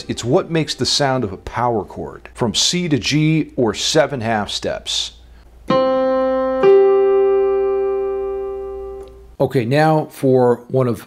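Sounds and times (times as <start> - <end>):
digital piano notes: 5.6 - 9.4.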